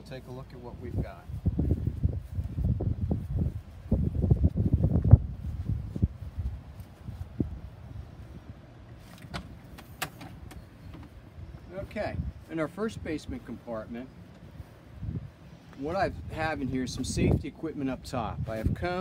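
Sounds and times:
wind rumble on microphone: 0.0 - 19.0.

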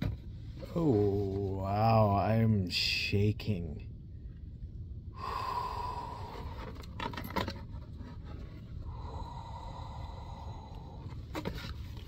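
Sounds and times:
man sighing: 5.2 - 6.7, 8.9 - 11.2.

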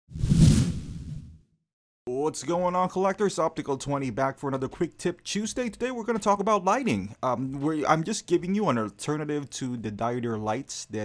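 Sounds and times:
whoosh with low rumble: 0.1 - 1.4.

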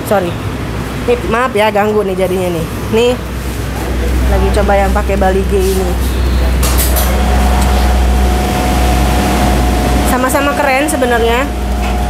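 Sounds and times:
machinery low hum: 0.0 - 12.0
thin machine whine: 3.3 - 12.0.

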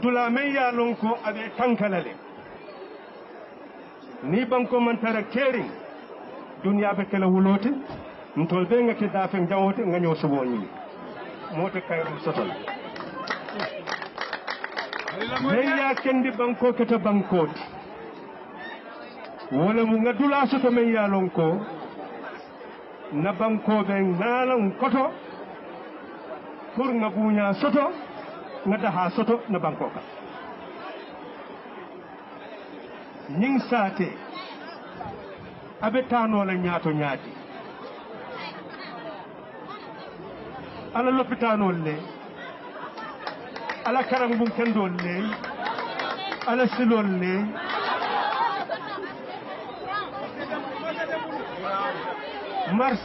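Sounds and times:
faint background chatter: 0.0 - 53.0
murmur of crowd talking: 0.0 - 53.0.

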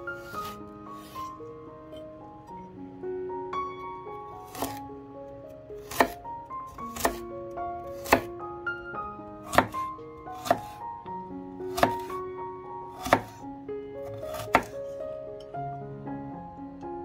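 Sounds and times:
soft piano music: 0.0 - 17.0
knife chopping on wooden board: 4.5 - 4.8, 5.8 - 6.2, 6.9 - 7.2, 8.0 - 8.3, 9.4 - 10.8, 11.7 - 12.1, 13.0 - 13.4, 14.1 - 14.8.

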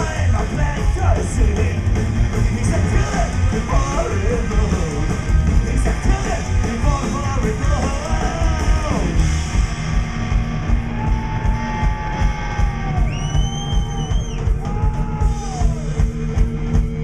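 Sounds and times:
upright double bass: 0.0 - 10.4
drum kit beat: 0.0 - 17.0
electric guitars bending notes: 0.0 - 17.0
live rock band playing: 0.0 - 17.0.

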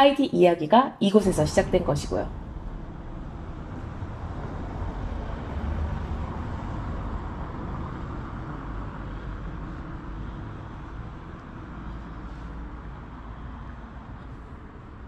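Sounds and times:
car traffic rumble: 1.2 - 15.0.

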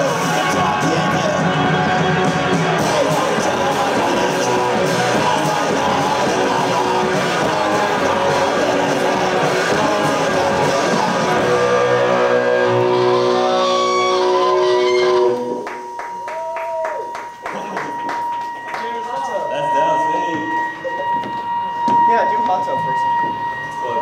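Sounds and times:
shouted vocals: 0.0 - 15.5
bass guitar: 0.0 - 16.0
drums: 0.0 - 24.0
electric guitars: 0.0 - 24.0.

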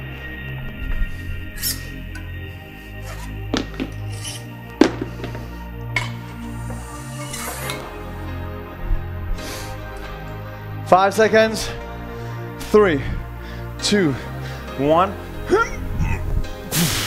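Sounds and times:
bass-heavy music with beat: 0.0 - 10.9.

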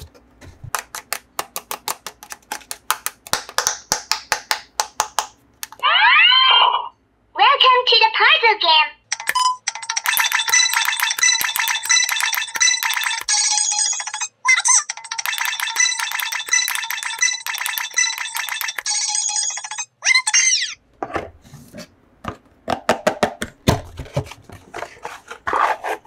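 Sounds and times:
rubbing handling noise: 0.0 - 2.9, 23.9 - 26.0
toy electronic jingle: 10.1 - 19.9
sliding voice-like squeaks: 19.7 - 20.8.

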